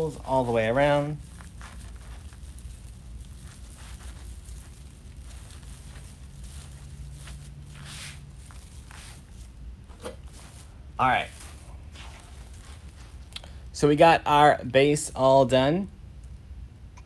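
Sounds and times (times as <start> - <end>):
plastic mesh rustling: 0.0 - 13.3
low steady hum: 0.0 - 17.0.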